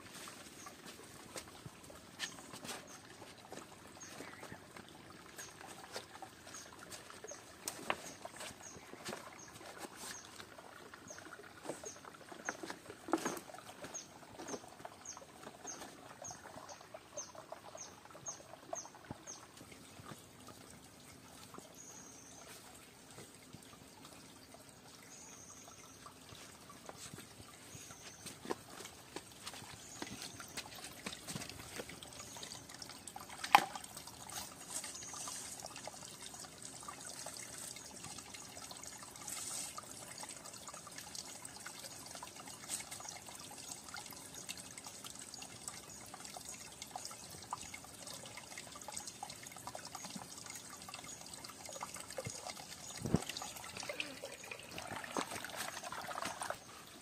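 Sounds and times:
stream trickling over rocks: 0.0s - 57.0s.

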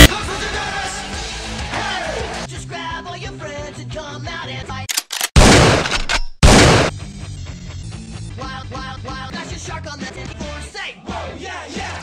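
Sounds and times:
background music: 0.0s - 4.7s.

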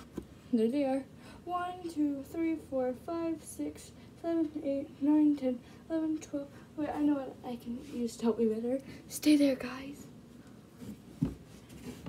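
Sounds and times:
person moving about: 10.6s - 12.0s.

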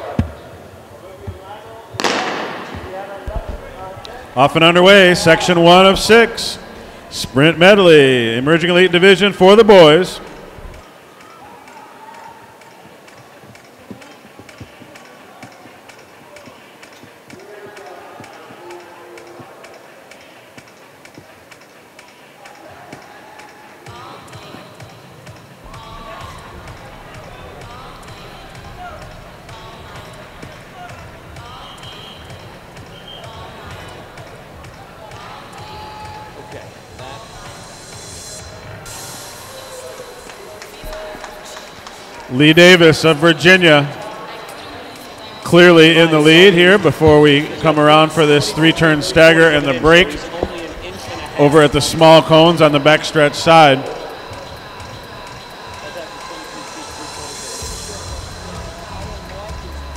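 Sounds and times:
crowd voices: 0.0s - 59.9s.

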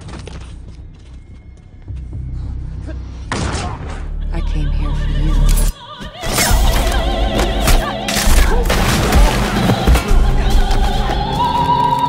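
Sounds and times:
low rumbling film score: 0.0s - 12.0s.

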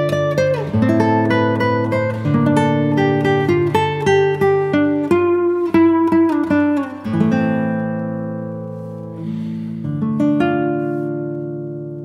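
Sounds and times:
acoustic guitar chord ringing: 0.0s - 12.0s
acoustic guitar plucked notes: 0.0s - 12.0s.

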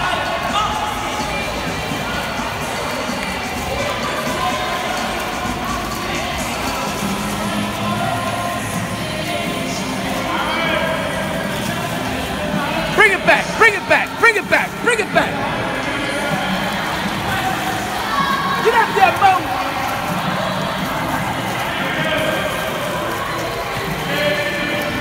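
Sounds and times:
distant echoing voices: 0.0s - 24.4s
water splashing: 0.8s - 25.0s.

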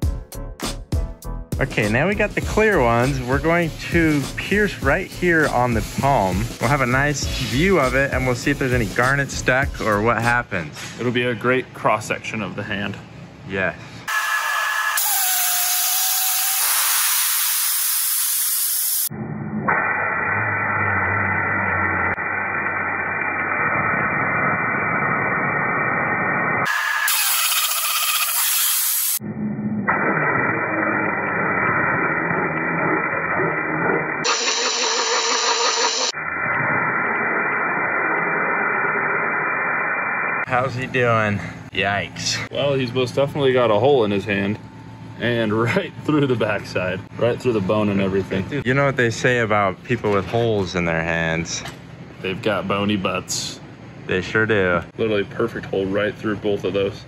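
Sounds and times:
high-pressure waterjet hissing: 14.8s - 19.1s, 26.7s - 29.2s, 34.3s - 36.1s.

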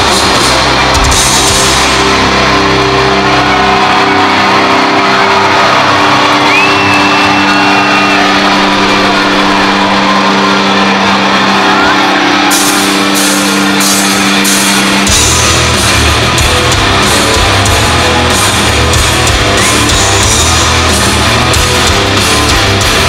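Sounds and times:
bass music: 0.0s - 23.0s
crowd cheering and shouting: 0.0s - 23.0s
whistle from crowd: 6.3s - 8.5s.

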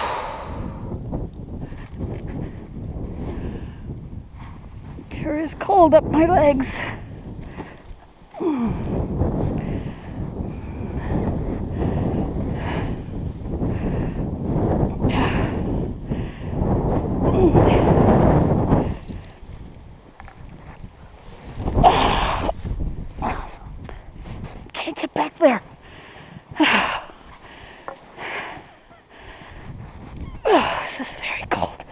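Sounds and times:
snow crunching: 0.1s - 31.9s
person grunting: 8.4s - 8.9s.

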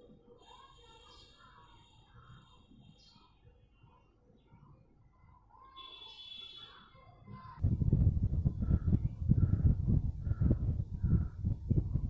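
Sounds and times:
crow-like bird calling: 8.6s - 11.4s.

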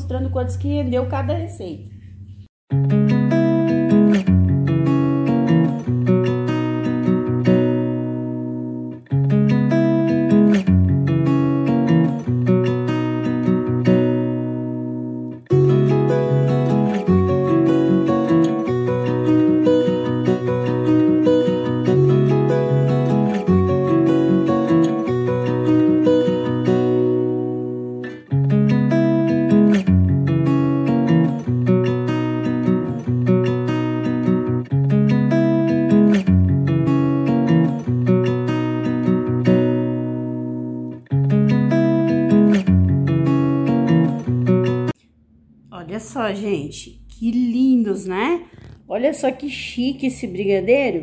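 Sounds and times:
plucked acoustic guitar tune: 2.7s - 45.0s.

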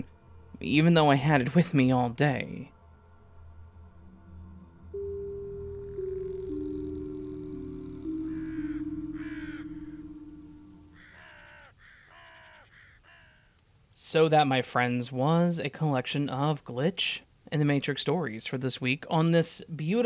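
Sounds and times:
music sting with held notes: 4.6s - 11.0s
bird cawing: 7.4s - 13.6s.

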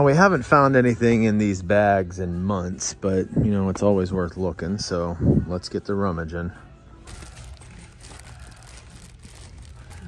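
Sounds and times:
plastic bags crinkling: 7.0s - 10.0s.

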